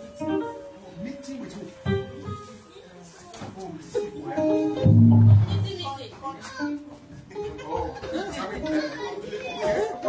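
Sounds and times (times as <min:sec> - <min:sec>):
overlapping indistinct chatter: 0:00.0 - 0:10.0.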